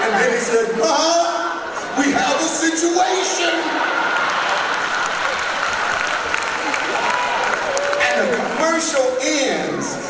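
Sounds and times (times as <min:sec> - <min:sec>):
voices rising from crowd: 0:00.0 - 0:10.0
congregation applauding: 0:03.2 - 0:09.7.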